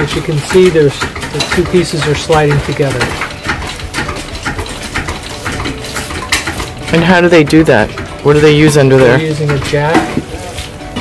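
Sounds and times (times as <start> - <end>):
hard objects clinking and knocking: 0.0 - 11.0.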